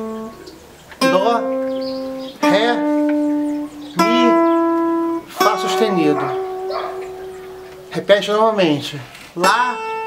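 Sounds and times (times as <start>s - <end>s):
guitar notes picked: 0.0s - 10.0s
man speaking: 2.4s - 3.0s, 4.0s - 4.6s, 5.2s - 6.5s, 7.9s - 9.9s.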